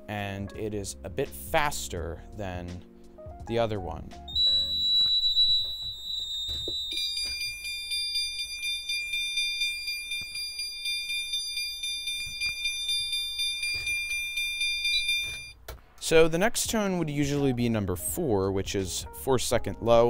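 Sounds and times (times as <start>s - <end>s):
high steady alarm beep: 4.3s - 15.6s
pulsing high alarm tones: 4.3s - 15.6s.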